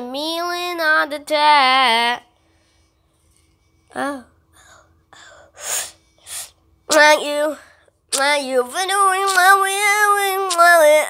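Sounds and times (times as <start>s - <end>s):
child's breathy huffs: 4.6s - 6.6s.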